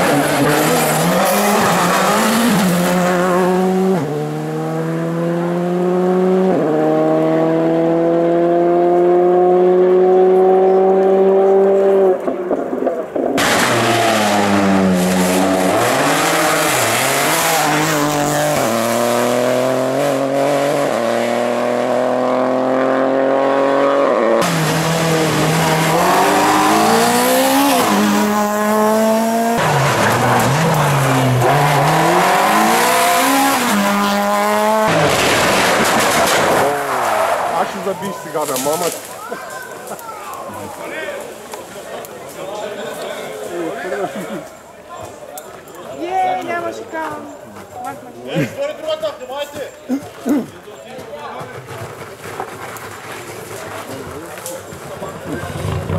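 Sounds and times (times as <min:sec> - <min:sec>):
rally car engines revving: 0:00.0 - 0:39.2, 0:51.4 - 0:55.9.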